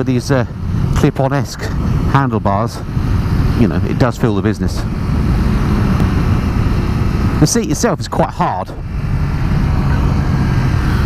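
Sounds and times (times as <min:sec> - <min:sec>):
motorcycle engine running steadily: 0:00.0 - 0:11.0
wind and road noise: 0:00.0 - 0:11.0.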